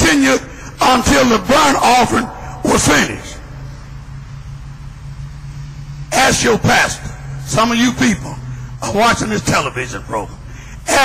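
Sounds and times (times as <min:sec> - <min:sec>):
steady low hum with rumble: 0:00.0 - 0:11.0.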